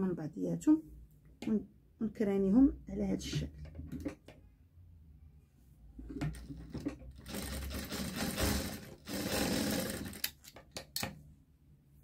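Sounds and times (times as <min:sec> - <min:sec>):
sewing machine stitching: 0:06.1 - 0:10.5.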